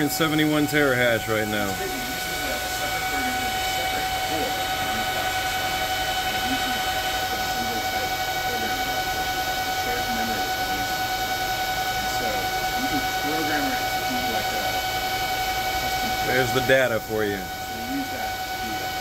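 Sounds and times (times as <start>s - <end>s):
cooling fans rushing and whining: 0.0s - 19.0s.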